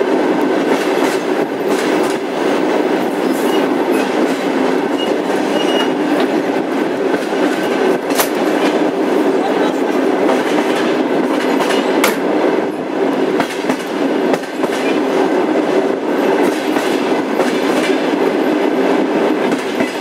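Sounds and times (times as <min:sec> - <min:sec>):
rail joint clicks: 0:00.0 - 0:20.0
train wheels rumbling on rails: 0:00.0 - 0:20.0.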